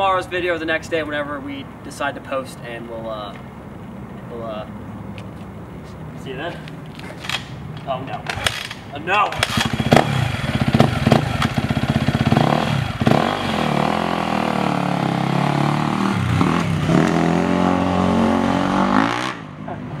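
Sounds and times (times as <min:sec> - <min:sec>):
dirt bike engine revving: 0:09.3 - 0:19.5.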